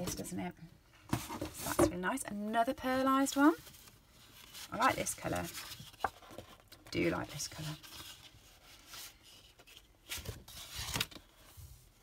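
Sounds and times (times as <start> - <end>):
paper sheets rustling: 3.4 - 11.8.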